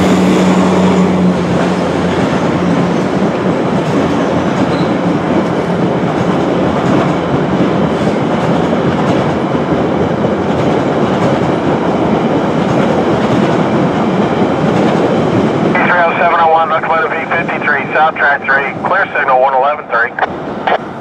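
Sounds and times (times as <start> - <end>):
railcars rumbling on track: 0.0 - 21.0.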